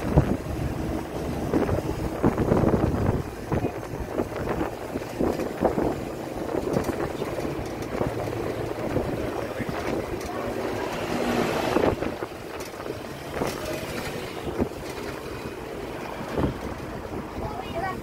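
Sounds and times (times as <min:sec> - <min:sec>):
wind rushing: 0:00.0 - 0:17.9
bus engine running low: 0:00.0 - 0:18.0
city traffic: 0:00.0 - 0:18.0.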